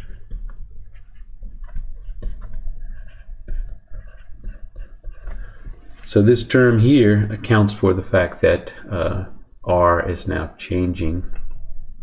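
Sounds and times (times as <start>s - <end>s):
stylus scratching on pen tablet: 0.0s - 8.6s.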